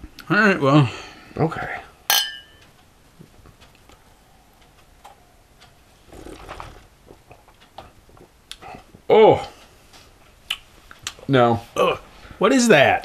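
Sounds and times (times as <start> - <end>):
beer glasses clinking: 2.1 - 2.6.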